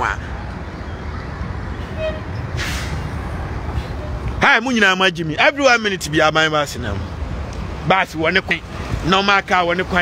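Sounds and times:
low street noise rumble: 0:00.0 - 0:10.0
brief hiss: 0:02.6 - 0:03.0.

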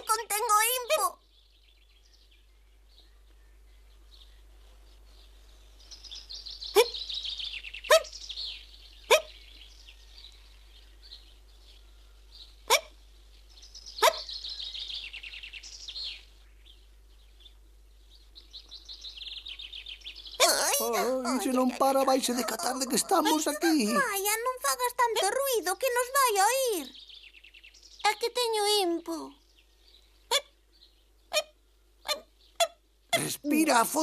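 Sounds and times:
high twittering birdsong: 0:00.0 - 0:34.0
cartoon hiccups: 0:09.1 - 0:09.3, 0:12.7 - 0:12.9, 0:20.4 - 0:24.2.

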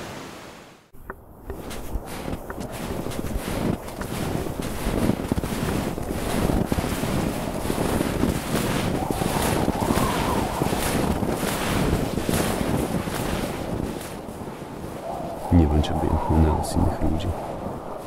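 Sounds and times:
wind rushing: 0:01.2 - 0:18.0.

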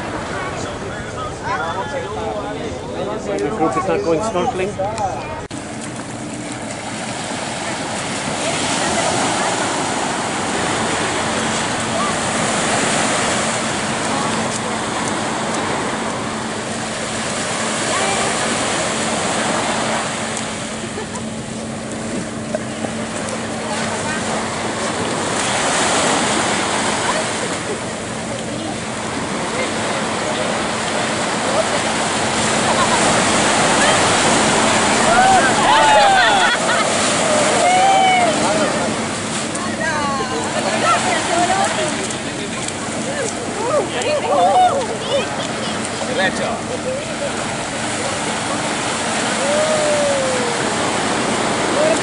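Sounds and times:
small waves washing onto sand: 0:05.5 - 0:52.0.

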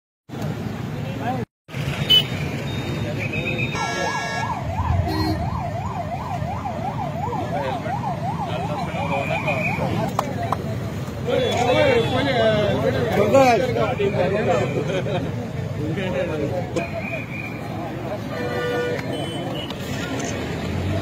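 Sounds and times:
road traffic rumble: 0:00.3 - 0:21.0
emergency siren yelping: 0:03.8 - 0:10.1.

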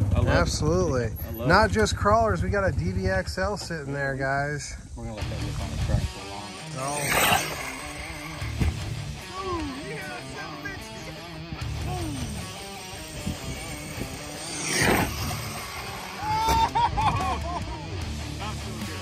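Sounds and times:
rc car motor and tyres rushing: 0:05.4 - 0:19.0.

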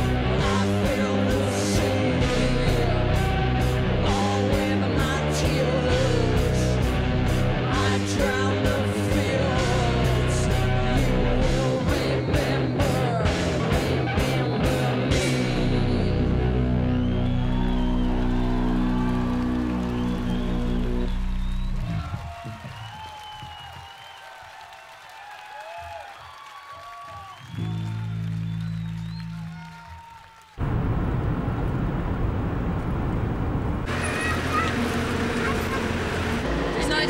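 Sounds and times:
crowd cheering and whooping: 0:16.2 - 0:30.8, 0:33.9 - 0:37.0
loud steady rush of noise: 0:30.6 - 0:37.0.

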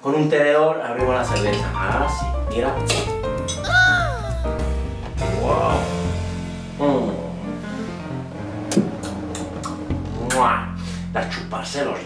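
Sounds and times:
background music low note: 0:01.0 - 0:12.0.

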